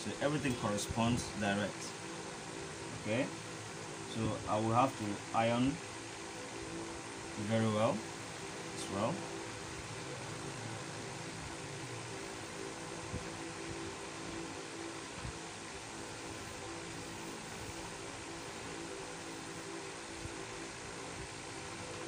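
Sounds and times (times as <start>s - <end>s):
machine hum and hiss: 0.0s - 22.0s.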